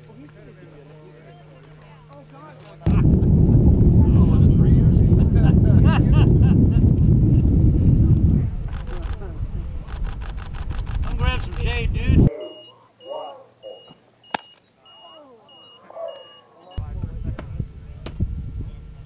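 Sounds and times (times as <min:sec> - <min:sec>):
people talking: 0:00.0 - 0:10.2, 0:11.0 - 0:12.7, 0:14.8 - 0:19.0
wind buffeting microphone: 0:02.9 - 0:12.3, 0:16.8 - 0:19.0.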